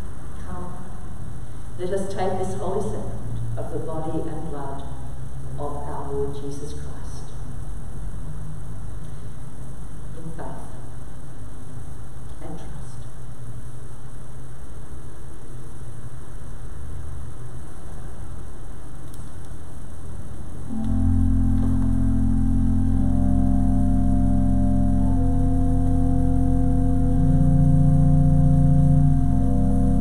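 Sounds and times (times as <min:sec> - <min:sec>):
low rumble: 0:20.7 - 0:30.0
organ playing slow chords: 0:20.7 - 0:30.0.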